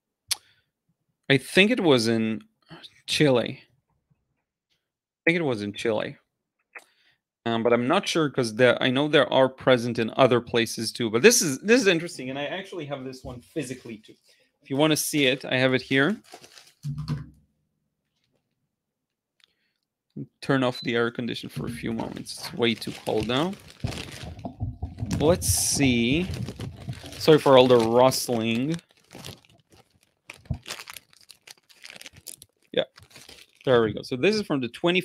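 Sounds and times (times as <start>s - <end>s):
person speaking: 7.5s - 16.2s, 20.2s - 28.9s, 33.6s - 35.0s
paper rustling and crinkling: 15.2s - 17.0s, 21.8s - 33.8s.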